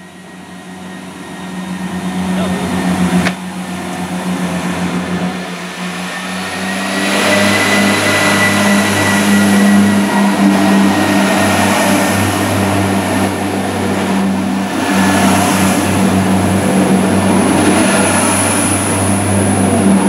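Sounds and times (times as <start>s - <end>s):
diesel train engines running: 0.0s - 20.0s.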